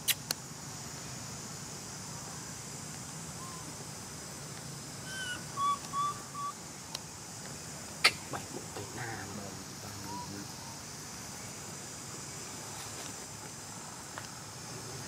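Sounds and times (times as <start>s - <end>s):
forest ambience hiss: 0.0s - 15.0s
whistle-like animal calls: 5.1s - 6.6s.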